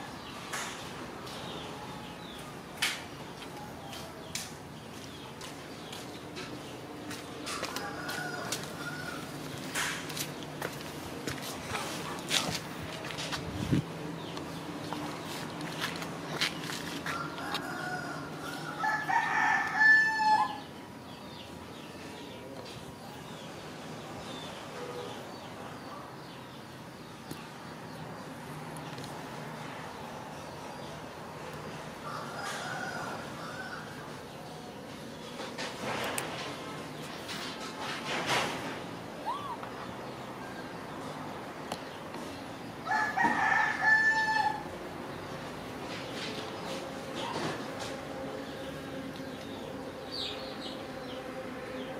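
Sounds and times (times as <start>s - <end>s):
rooster crowing: 7.5s - 9.4s, 17.0s - 20.7s, 32.0s - 34.1s, 42.8s - 44.7s.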